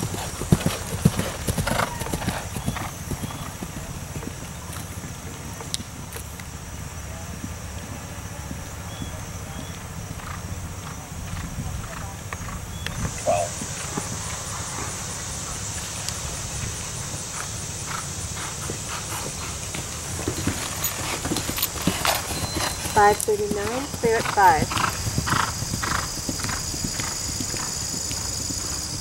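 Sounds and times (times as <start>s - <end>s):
horse hoofbeats on turf: 0.0s - 29.0s
steady high hiss: 0.0s - 29.0s.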